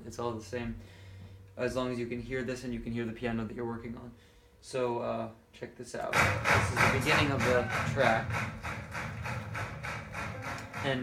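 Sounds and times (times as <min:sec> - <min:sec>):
piano: 0:06.2 - 0:11.0.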